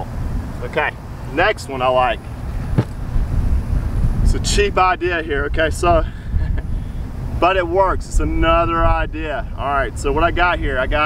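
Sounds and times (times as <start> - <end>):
wind buffeting microphone: 1.9 - 11.0.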